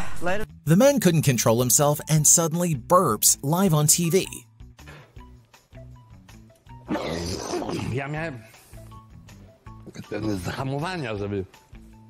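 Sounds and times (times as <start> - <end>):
soft background music: 0.2 - 12.0
man burping loudly: 6.9 - 8.0.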